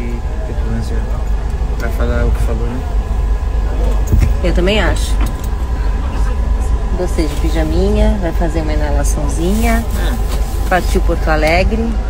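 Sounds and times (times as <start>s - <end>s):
faint steady whine: 0.0s - 12.0s
vehicle cabin engine rumble: 0.0s - 12.0s.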